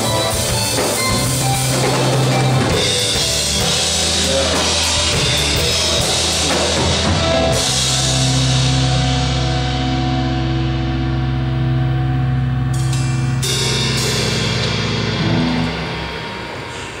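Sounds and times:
rock band sustained chord: 0:00.0 - 0:17.0
cymbals crashing: 0:12.8 - 0:17.0.

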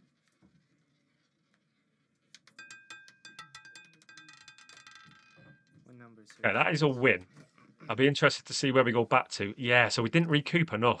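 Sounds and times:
roulette ball clattering: 0:02.2 - 0:05.9
metallic ringing: 0:02.5 - 0:05.9.

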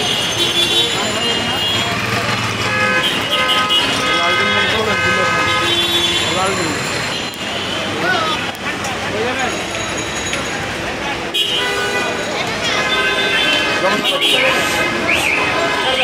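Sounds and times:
background chatter: 0:00.0 - 0:16.0
traffic noise: 0:00.0 - 0:16.0.

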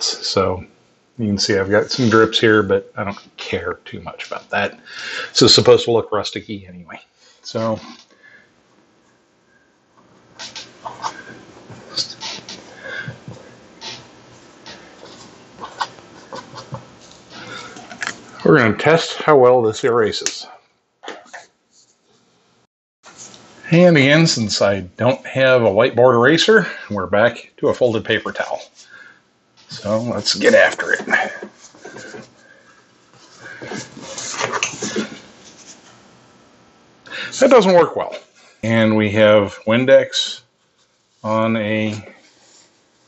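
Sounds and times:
marker squeaking and scratching: 0:12.0 - 0:12.6, 0:13.8 - 0:14.1, 0:15.0 - 0:16.8.

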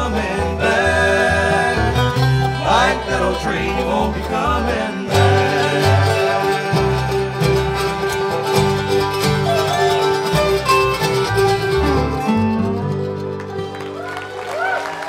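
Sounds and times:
banjo: 0:00.0 - 0:14.4
dobro: 0:00.0 - 0:14.4
acoustic guitar: 0:00.0 - 0:14.8
mandolin: 0:00.0 - 0:14.8
upright bass: 0:00.0 - 0:14.8.

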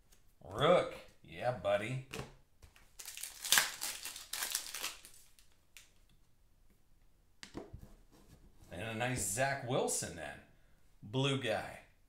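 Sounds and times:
foil wrapper crinkling: 0:03.0 - 0:05.9.

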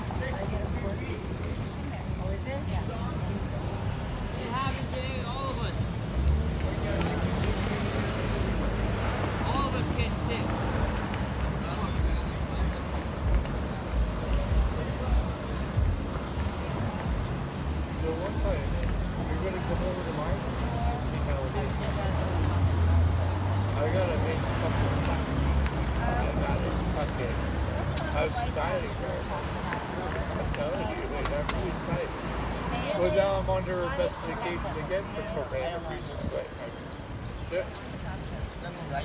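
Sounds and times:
faint indistinct voices: 0:00.0 - 0:39.0
street traffic rumble: 0:00.0 - 0:39.0.

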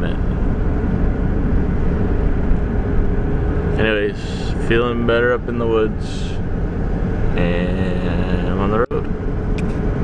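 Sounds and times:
faint engine hum: 0:00.0 - 0:10.0
road and wind noise: 0:00.0 - 0:10.0.

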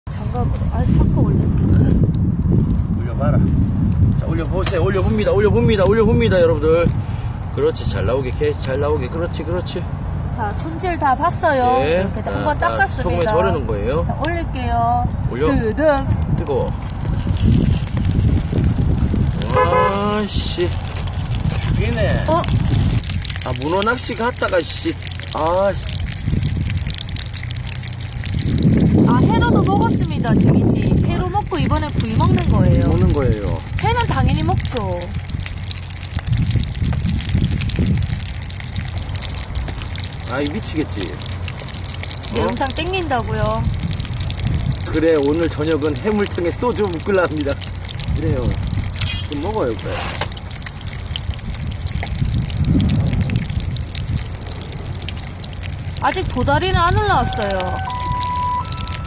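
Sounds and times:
continuous low rumble: 0:00.1 - 0:59.0
fish sizzling on a griddle: 0:04.2 - 0:09.1, 0:15.3 - 0:59.0
crackles and pops: 0:16.2 - 0:59.0.

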